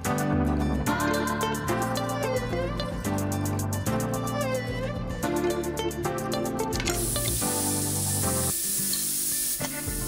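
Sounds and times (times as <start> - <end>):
background music: 0.0 - 10.0
pressure cooker steam hissing: 7.0 - 10.0.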